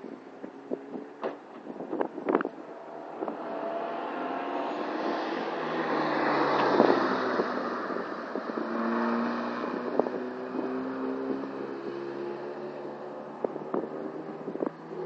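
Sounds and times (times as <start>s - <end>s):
car engine driving past: 2.7s - 10.1s.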